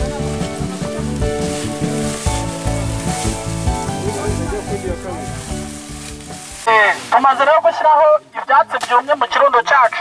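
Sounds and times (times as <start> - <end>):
background music: 0.0 - 9.7
dry leaves rustling and crackling: 0.0 - 10.0.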